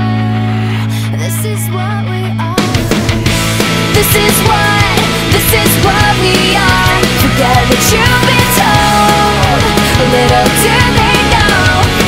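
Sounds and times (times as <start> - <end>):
loud rock song: 0.0 - 12.0.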